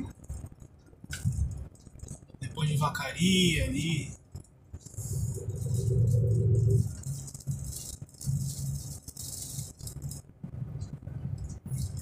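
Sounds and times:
truck engine humming: 0.0s - 12.0s.

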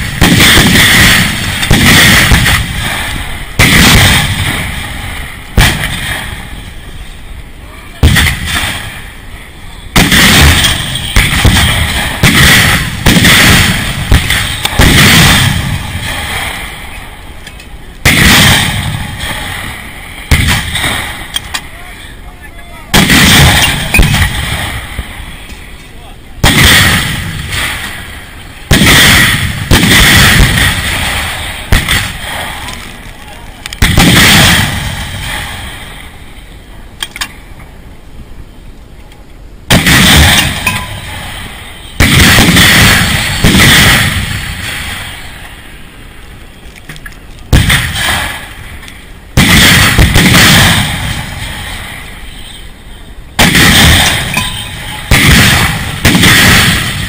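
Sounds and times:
shelling booms: 0.0s - 37.9s, 39.6s - 46.2s, 47.5s - 57.0s.

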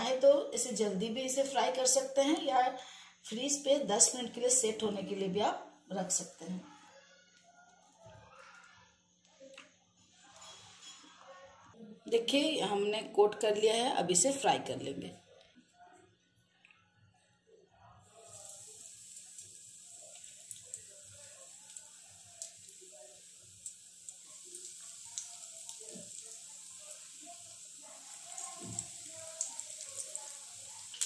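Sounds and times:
eggs sizzling in hot oil: 18.1s - 31.0s.

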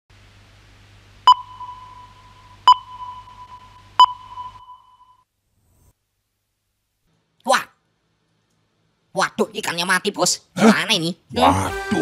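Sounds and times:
faint low hum: 0.1s - 9.2s
electronic test-tone beeps: 1.3s - 5.2s.

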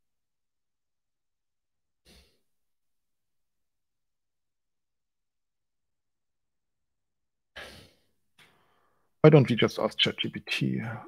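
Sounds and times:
faint breath: 7.6s - 9.2s.

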